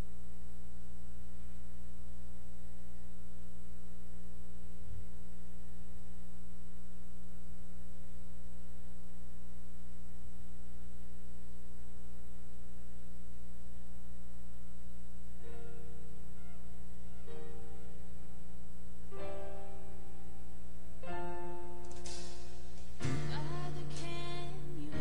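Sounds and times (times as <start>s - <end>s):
electrical mains hum: 0.0s - 25.0s
faint high-pitched whine: 0.0s - 25.0s.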